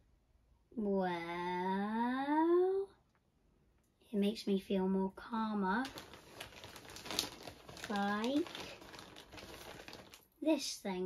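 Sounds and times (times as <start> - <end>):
plastic bag crinkling: 5.7 - 10.4.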